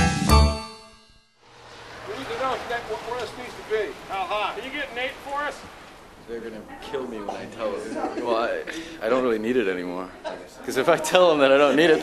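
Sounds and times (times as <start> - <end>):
rain on wet street: 1.5 - 9.1
people talking indistinctly: 2.0 - 12.0.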